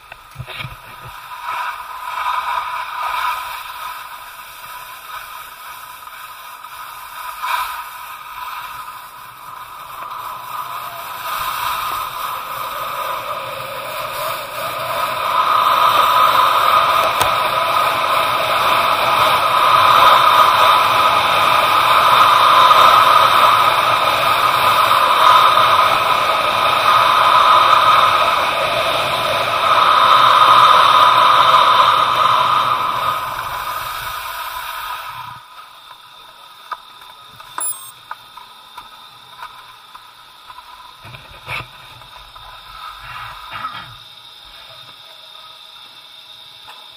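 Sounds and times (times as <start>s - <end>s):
skis scraping on snow: 0.3s - 28.2s.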